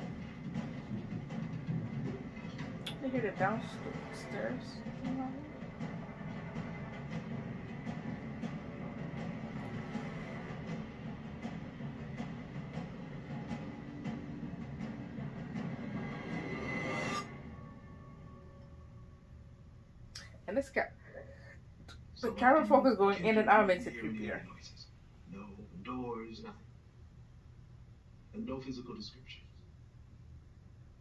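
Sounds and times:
low rumbling suspense drone: 0.0s - 20.1s.

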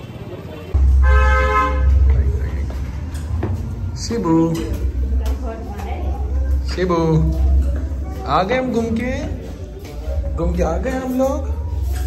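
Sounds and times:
horn-like tone: 0.8s - 2.1s
low rumble: 0.8s - 8.0s.

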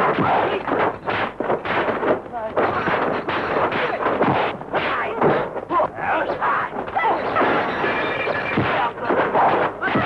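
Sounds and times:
punch and block impacts: 0.0s - 5.8s, 8.5s - 10.0s.

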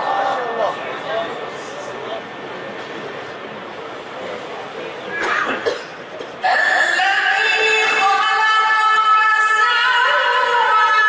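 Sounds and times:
person coughing: 5.2s - 6.3s.

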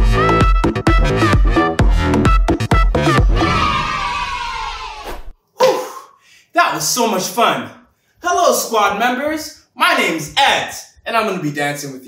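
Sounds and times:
man shouting: 5.6s - 6.1s
man yelling excitedly: 6.6s - 11.3s.

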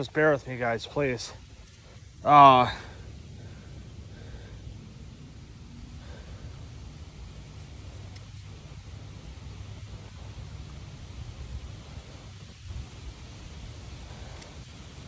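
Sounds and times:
wind rumble on microphone: 3.0s - 15.0s.

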